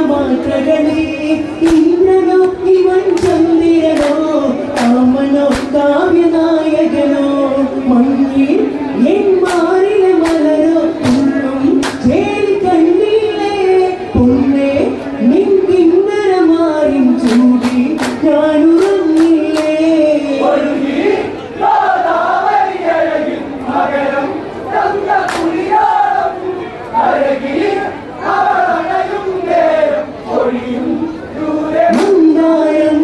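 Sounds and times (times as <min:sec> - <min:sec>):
hand claps: 0:01.6 - 0:05.8, 0:09.4 - 0:12.1, 0:17.2 - 0:19.8, 0:25.2 - 0:25.6.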